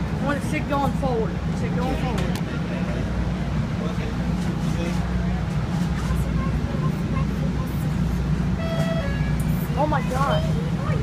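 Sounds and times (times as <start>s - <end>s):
light-rail car rumble: 0.0s - 11.0s
short pitched tone: 8.6s - 9.6s.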